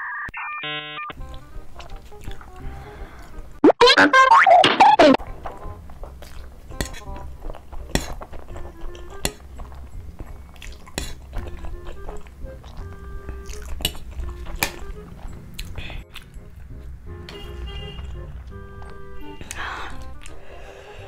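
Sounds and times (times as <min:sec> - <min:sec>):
fork clinking on platter: 0:06.7 - 0:07.2.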